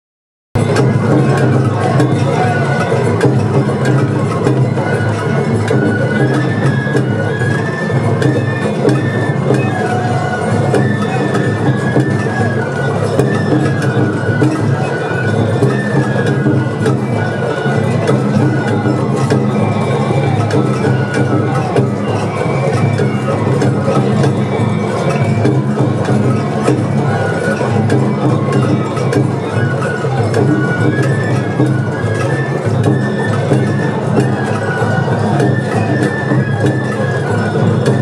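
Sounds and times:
bamboo flute melody: 0:00.6 - 0:38.0
crowd chatter: 0:00.6 - 0:38.0
sharp percussion strikes: 0:00.6 - 0:38.0
taiko drums: 0:00.6 - 0:38.0.

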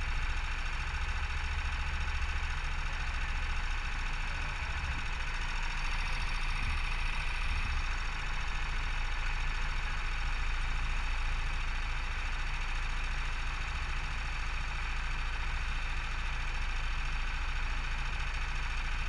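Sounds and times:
go-kart engine idling: 0:00.0 - 0:19.0.

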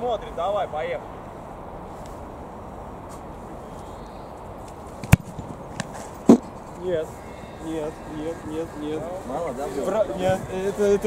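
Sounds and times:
football kicked thud: 0:05.0 - 0:06.5.

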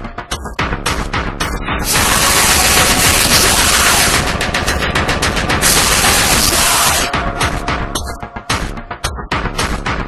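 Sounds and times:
dark electronic dance music: 0:00.0 - 0:10.0
rapid noisy electronic hits: 0:01.8 - 0:08.8.

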